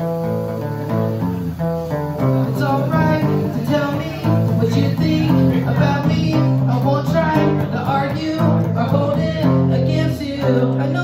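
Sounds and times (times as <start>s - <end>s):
electric guitar strumming chords: 0.0s - 11.0s.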